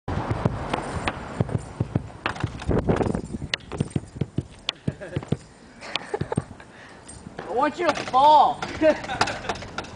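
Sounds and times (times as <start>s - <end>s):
sharp knocks and clicks: 0.3s - 6.5s.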